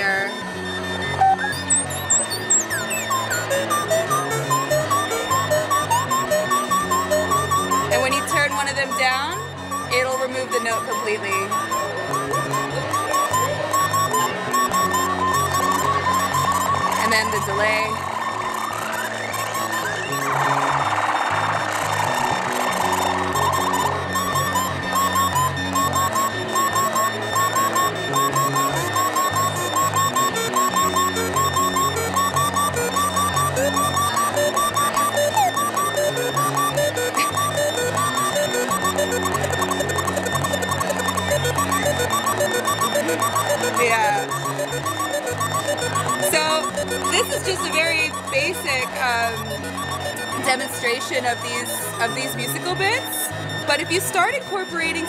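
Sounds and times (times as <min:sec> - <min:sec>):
synthesizer sequencer loop: 0:00.0 - 0:55.0
short chirping blips: 0:23.4 - 0:52.3.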